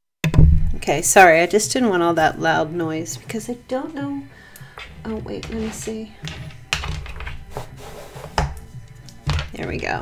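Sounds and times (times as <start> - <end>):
dice clicking and knocking: 4.8 - 7.7.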